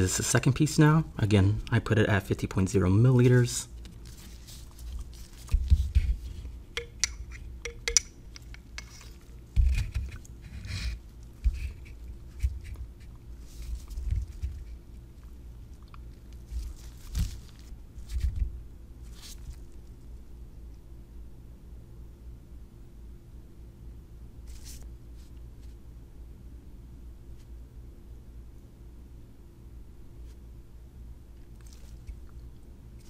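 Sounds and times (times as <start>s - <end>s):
faint steady hum: 0.0s - 33.0s
light clicks of glassware: 6.8s - 8.1s.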